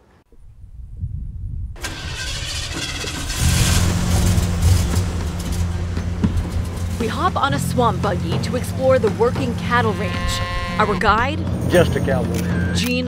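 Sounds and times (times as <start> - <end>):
engine starting and idling: 1.8 - 10.0.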